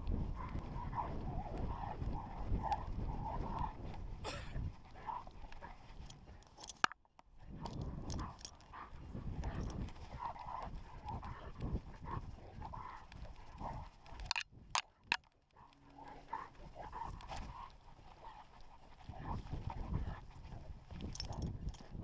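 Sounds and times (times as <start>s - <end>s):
dog panting: 0.0s - 6.7s, 7.6s - 14.4s, 15.0s - 22.0s
sharp clicks: 5.5s - 8.8s, 14.0s - 16.0s
paws thudding on grass: 7.5s - 14.4s.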